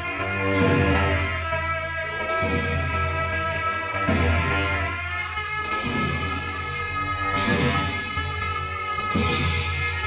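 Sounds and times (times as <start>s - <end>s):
reedy horn tones: 0.0s - 10.0s.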